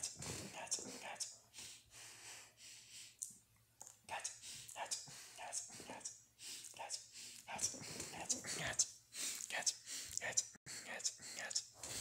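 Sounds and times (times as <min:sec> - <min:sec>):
person whispering syllables: 0:00.0 - 0:01.4, 0:03.8 - 0:12.0.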